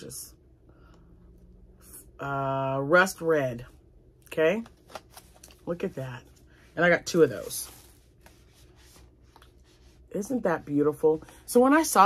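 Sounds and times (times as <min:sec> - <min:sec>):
soft rubbing of yarn: 0:05.8 - 0:11.8.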